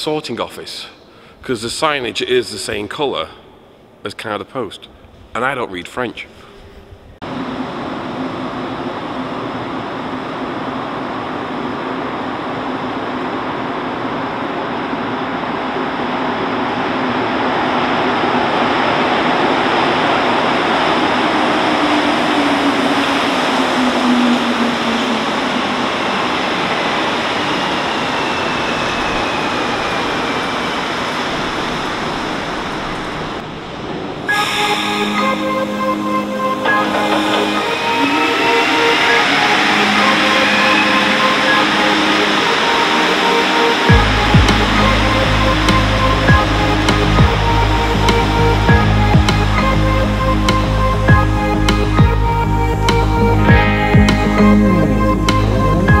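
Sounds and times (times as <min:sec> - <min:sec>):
train pulling into station: 0:06.2 - 0:56.0
train rushing noise: 0:06.3 - 0:56.0
train brakes whining: 0:19.3 - 0:33.0, 0:34.2 - 0:53.8.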